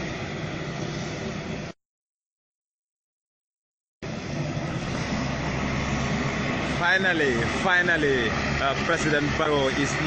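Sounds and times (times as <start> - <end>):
aircraft engines running: 0.0 - 1.8, 4.0 - 10.0.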